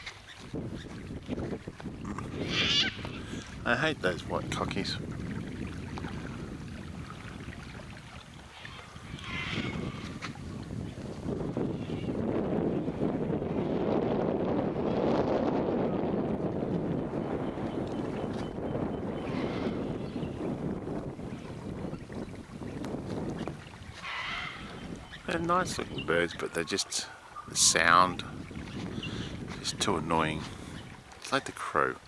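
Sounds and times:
cockatoos screeching: 2.4s - 3.2s, 8.7s - 10.2s, 24.0s - 24.7s.

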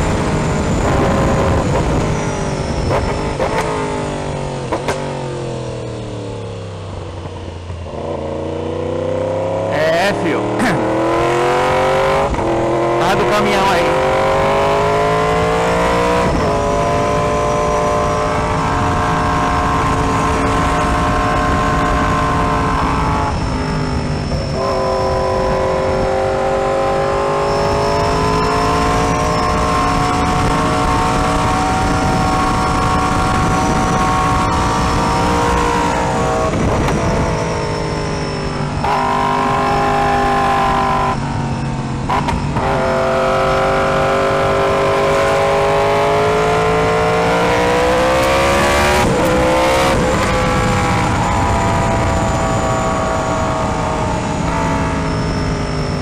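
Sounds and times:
motorcycle engine revving: 0.0s - 56.0s
wind and road noise: 0.0s - 56.0s.

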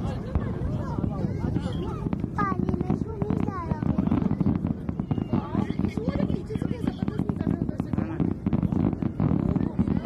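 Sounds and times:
crowd talking and calling out: 0.0s - 10.0s
fireworks crackling and popping: 0.0s - 10.0s.

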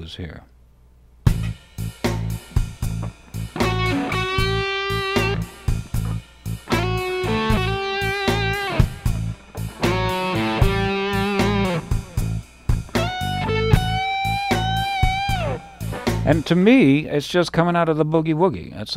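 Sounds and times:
bass and drum groove: 1.2s - 17.0s
electric guitar playing blues: 2.2s - 16.8s.

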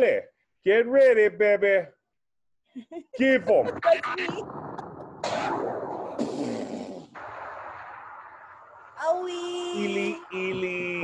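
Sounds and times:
cartoon cannon blast: 3.6s - 9.0s.

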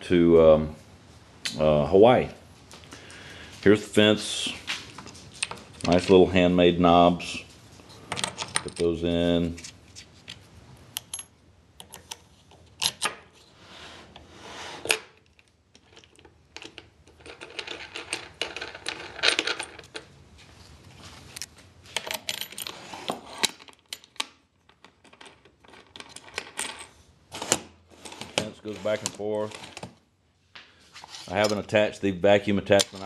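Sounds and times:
clicks and knocks of metal parts: 8.1s - 9.0s, 11.0s - 13.3s, 23.4s - 29.9s, 32.7s - 33.0s.

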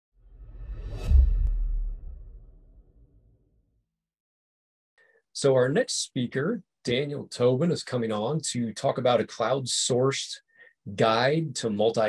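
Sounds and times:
whoosh: 0.2s - 3.4s
deep low rumble: 0.3s - 3.2s.

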